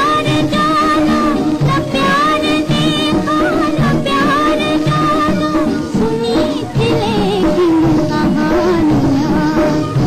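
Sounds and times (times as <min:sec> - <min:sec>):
instrumental accompaniment: 0:00.0 - 0:10.0
person singing with vibrato: 0:00.0 - 0:10.0.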